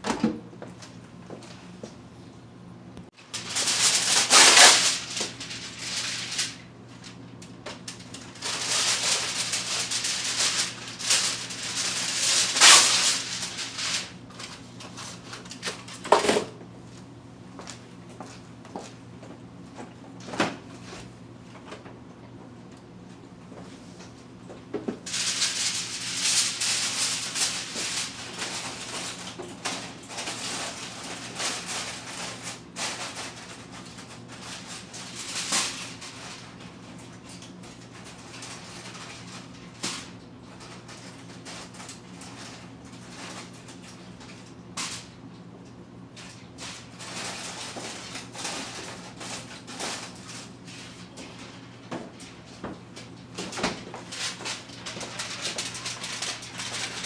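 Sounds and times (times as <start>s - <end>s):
clattering and rustling in kitchen: 0.0s - 2.4s, 3.0s - 57.0s
aluminium foil crinkling: 3.2s - 16.1s, 25.0s - 45.2s, 46.2s - 57.0s.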